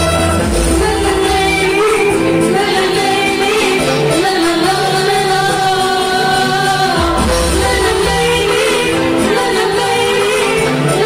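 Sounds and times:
singing over a band: 0.0 - 11.0.

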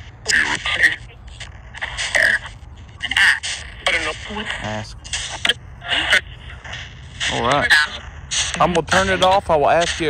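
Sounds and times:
garbled radio voice bursts: 0.2 - 10.0.

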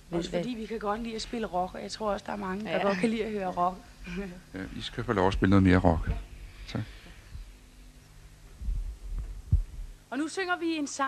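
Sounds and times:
low electrical hum: 0.0 - 11.0
dull low thumps: 8.5 - 10.0.

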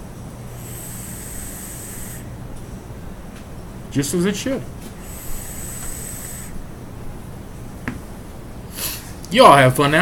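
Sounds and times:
person exhaling: 0.6 - 2.3, 5.0 - 6.6, 8.7 - 9.2
vape draw hiss: 0.6 - 2.4, 5.0 - 6.6.

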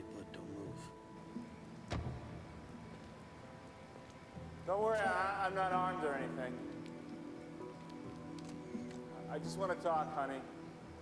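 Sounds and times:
faint steady tones: 0.0 - 11.0
sharp knock with low thud: 1.9 - 2.6.

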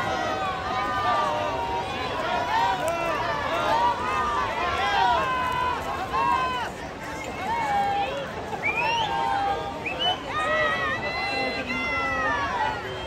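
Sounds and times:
spectators shouting and cheering: 0.0 - 13.0.

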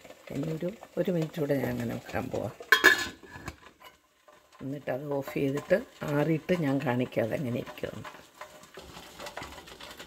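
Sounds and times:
metal lid clanking onto pot: 2.6 - 4.0.

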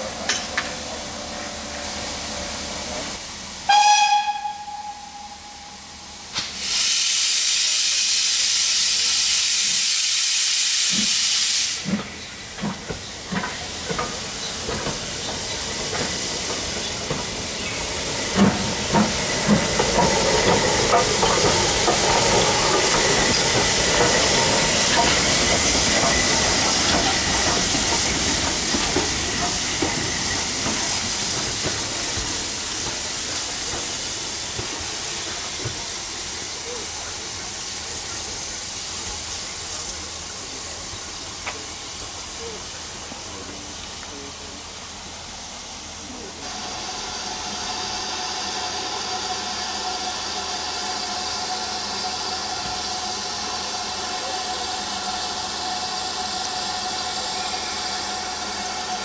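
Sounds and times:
steam hissing: 0.0 - 59.0
steam locomotive exhaust beats: 0.0 - 59.0
steam locomotive whistle: 3.6 - 8.3, 46.4 - 59.0.

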